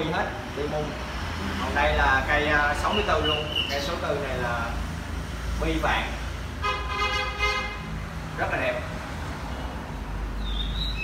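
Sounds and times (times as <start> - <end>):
vehicle horn toot: 6.6 - 7.8.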